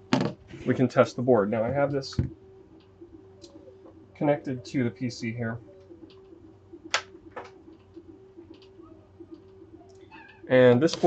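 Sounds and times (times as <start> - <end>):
faint steady hum: 0.0 - 11.0
sharp clicks: 6.9 - 10.1.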